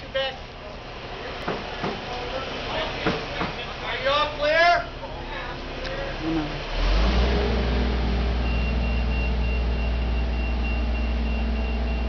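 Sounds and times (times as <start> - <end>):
truck engine running: 0.0 - 12.0.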